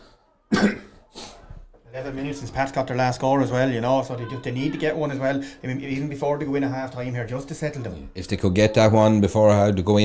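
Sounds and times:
man coughing: 0:00.5 - 0:01.0.

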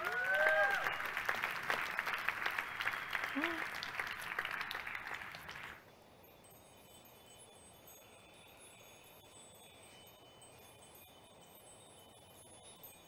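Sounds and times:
audience applause: 0:00.0 - 0:05.8
high tinkling chime tones: 0:05.8 - 0:13.0.

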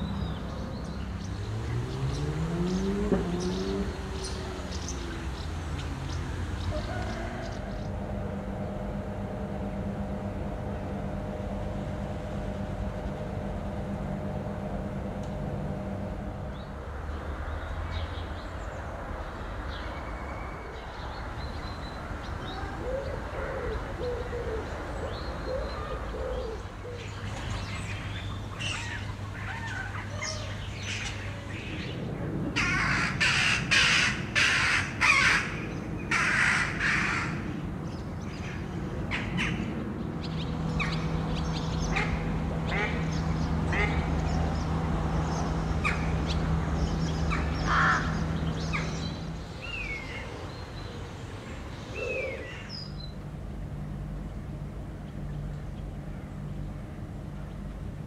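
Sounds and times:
birds calling: 0:00.0 - 0:57.8
low steady hum: 0:00.0 - 0:58.0.

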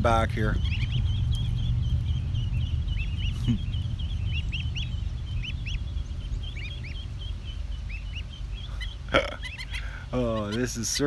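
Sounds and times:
ducklings peeping: 0:00.0 - 0:11.0
steady low rumble: 0:00.0 - 0:11.0.

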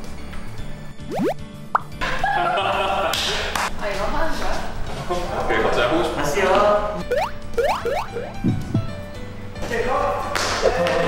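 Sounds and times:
light background music: 0:00.0 - 0:11.0
cartoon bloop sound effects: 0:01.1 - 0:01.4, 0:07.0 - 0:08.4.

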